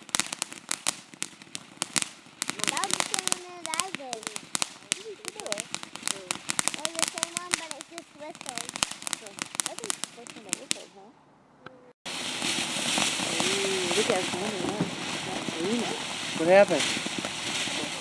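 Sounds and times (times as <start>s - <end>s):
firework crackling: 0.0s - 11.1s, 12.0s - 18.0s.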